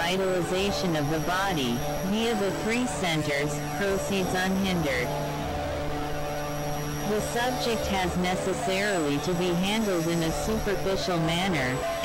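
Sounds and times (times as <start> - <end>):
synthesizer drone: 0.0 - 12.0.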